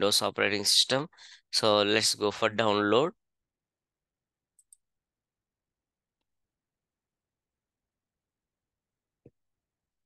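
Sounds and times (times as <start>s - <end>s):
computer mouse click: 4.6s - 4.8s.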